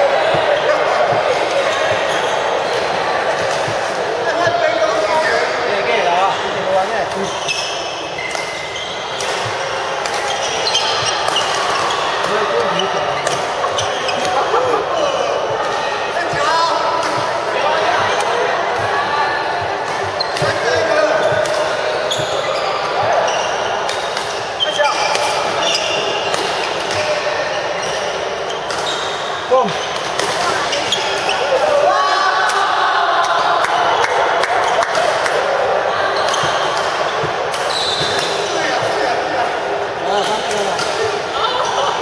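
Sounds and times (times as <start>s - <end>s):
shoes squeaking on court: 5.9s - 16.4s, 19.8s - 31.6s, 36.0s - 39.2s.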